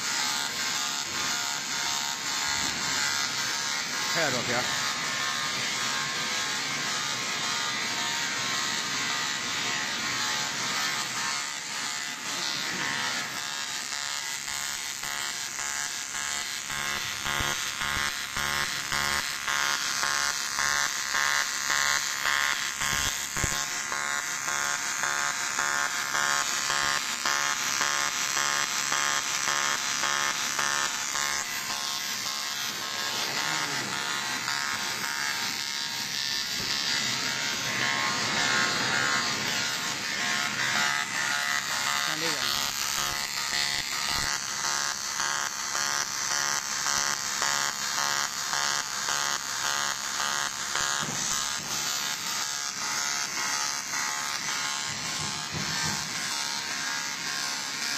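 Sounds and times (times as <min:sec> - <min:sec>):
welding arc buzzing: 0:00.0 - 0:57.9.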